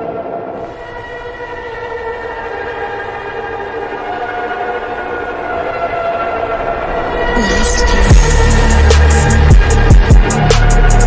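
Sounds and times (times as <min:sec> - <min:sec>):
sustained synthesizer chord: 0:00.0 - 0:11.0.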